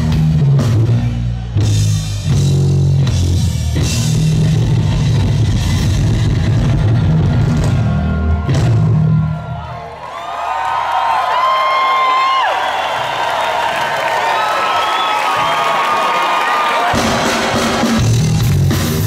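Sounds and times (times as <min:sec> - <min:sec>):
crowd cheering and whooping: 0:03.7 - 0:18.8.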